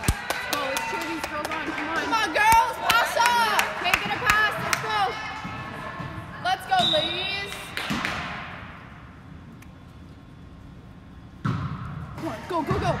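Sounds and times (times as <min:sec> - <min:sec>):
volleyball struck: 0:03.9 - 0:08.9, 0:11.4 - 0:13.0.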